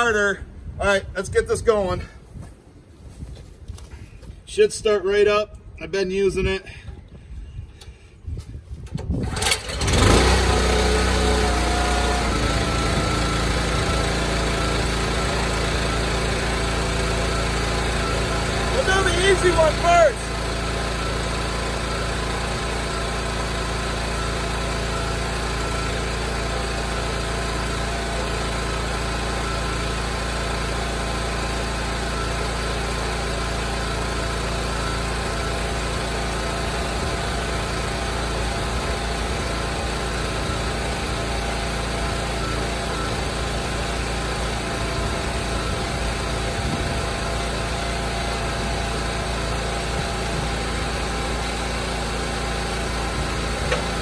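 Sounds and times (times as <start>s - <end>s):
log splitter engine running: 8.9s - 54.0s.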